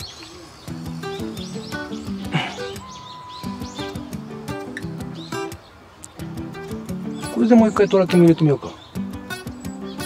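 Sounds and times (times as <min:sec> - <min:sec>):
background music with light beat: 0:00.0 - 0:10.0
birds chirping: 0:00.0 - 0:10.0.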